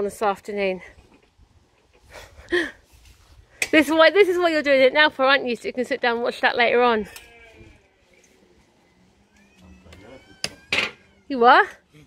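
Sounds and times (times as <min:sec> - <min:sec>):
cat meowing: 0:09.2 - 0:11.8.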